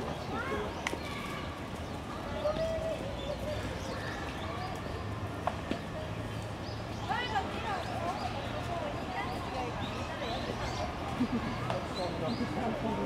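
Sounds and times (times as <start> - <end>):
distant people talking: 0.0 - 13.0.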